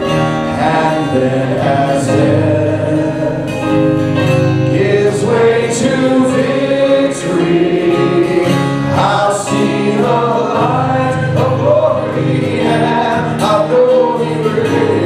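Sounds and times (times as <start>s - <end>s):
man singing: 0.0s - 4.0s, 4.6s - 15.0s
acoustic guitar: 0.0s - 15.0s
keyboard: 0.0s - 15.0s.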